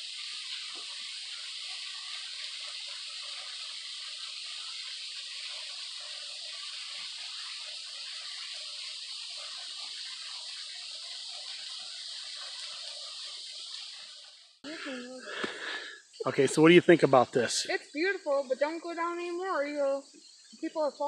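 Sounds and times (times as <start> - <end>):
waterfall splashing: 0.0 - 18.2.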